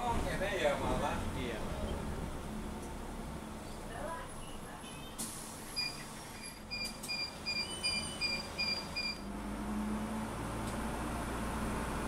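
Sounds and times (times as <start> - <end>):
electronic warning beeps: 5.8 - 9.3.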